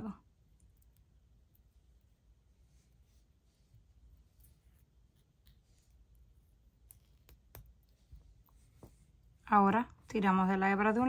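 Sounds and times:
faint clicks of needle and beads: 0.1 - 9.4.

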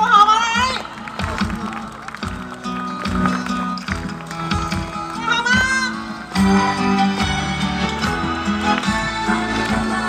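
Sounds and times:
live band over loudspeakers: 0.0 - 10.0.

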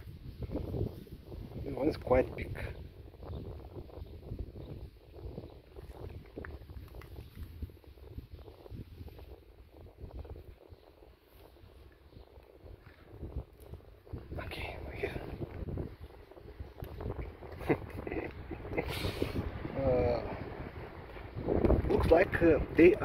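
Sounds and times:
wind rumble on microphone: 0.0 - 23.0
cats crunching dry kibble: 5.7 - 7.9.

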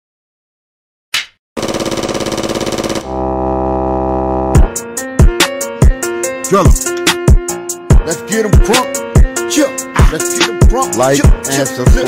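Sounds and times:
stuttering synth pulse: 1.6 - 4.7
held synth chord: 2.6 - 7.0.

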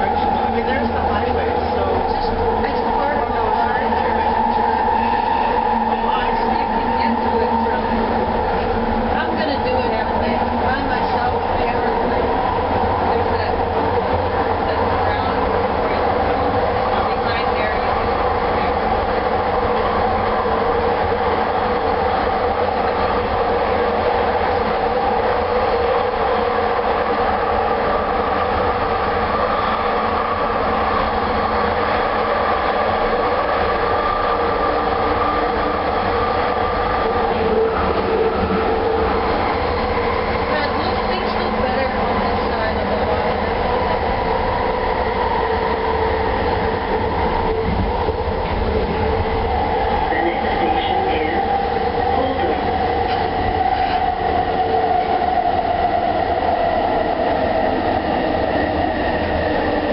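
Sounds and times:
train rolling rumble: 0.0 - 59.9.

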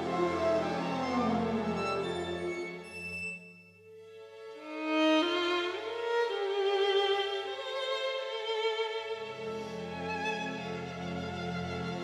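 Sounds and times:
violin and string orchestra: 0.0 - 12.0.

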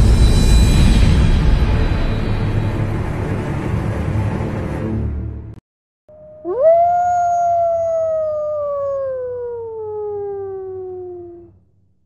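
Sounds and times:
wolf howling: 6.1 - 11.6.

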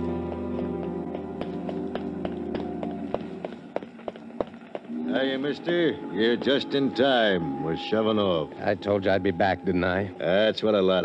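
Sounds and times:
hurrying footsteps: 0.0 - 7.0.

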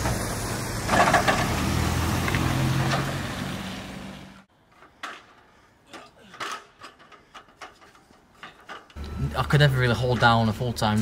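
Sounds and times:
vehicle engine humming: 0.0 - 4.5
aluminium ladder knocks and rattles: 4.6 - 9.0.

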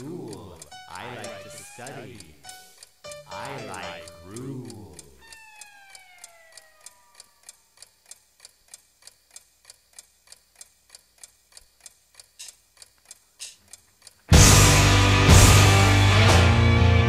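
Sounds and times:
clock ticking: 0.0 - 14.6.

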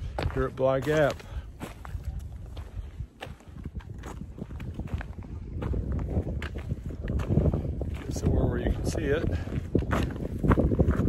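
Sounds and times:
footsteps on dirt trail: 0.0 - 11.0
wind rumble on microphone: 0.0 - 11.0.

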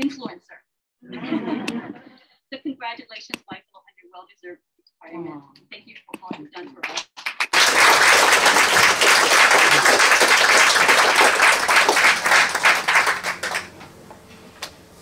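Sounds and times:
audience applauding: 6.8 - 13.8.

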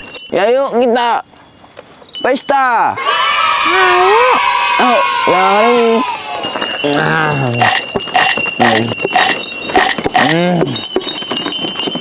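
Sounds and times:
small bells ringing: 0.0 - 1.3, 1.9 - 4.9, 6.1 - 12.0.

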